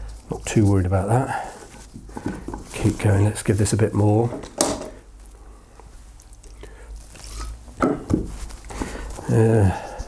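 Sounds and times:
plastic bottle handling: 0.0s - 5.1s, 6.2s - 10.0s.

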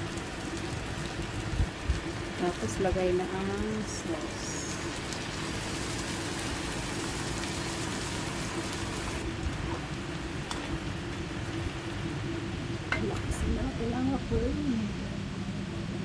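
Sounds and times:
prawns sizzling in a wok: 0.0s - 13.6s
steady low hum: 0.0s - 16.0s.

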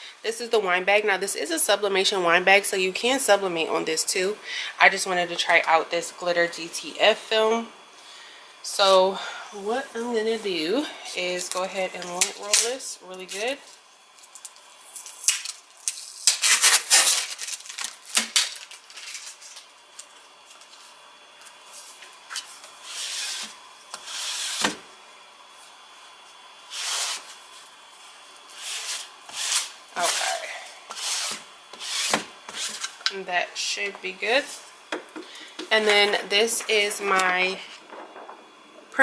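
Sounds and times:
lint roller rolling over fabric: 26.6s - 33.0s.

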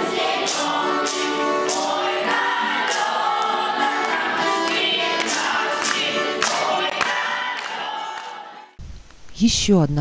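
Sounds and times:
children's choir singing: 0.0s - 8.8s.

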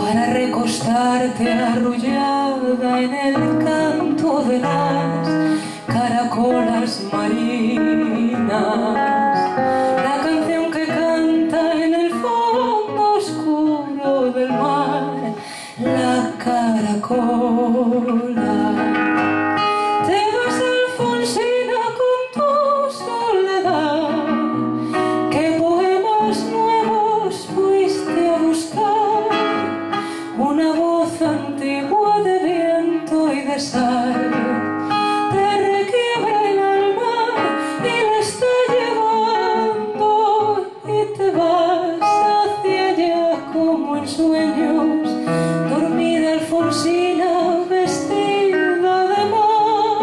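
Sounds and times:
acoustic guitar: 0.0s - 50.0s
woman singing with vibrato: 0.0s - 50.0s.

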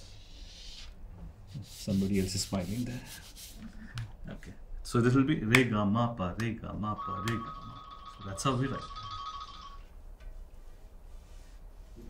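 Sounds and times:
faint low room hum: 0.0s - 12.0s
high-pitched held tone: 7.0s - 9.9s.

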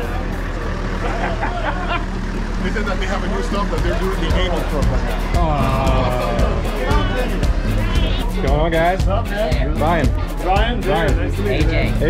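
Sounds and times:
minibus engine idling: 0.0s - 12.0s
people talking: 0.0s - 12.0s
person laughing: 1.0s - 2.2s.

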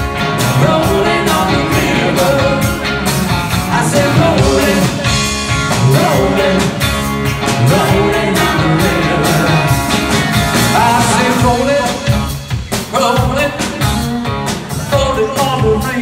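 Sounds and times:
bass guitar: 0.0s - 16.0s
drums: 0.0s - 16.0s
electric guitar: 0.0s - 16.0s
person singing: 0.4s - 16.0s.

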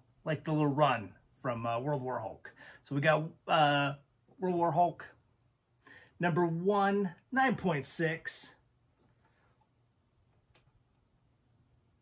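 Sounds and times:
man speaking: 0.2s - 5.2s, 6.2s - 8.7s.

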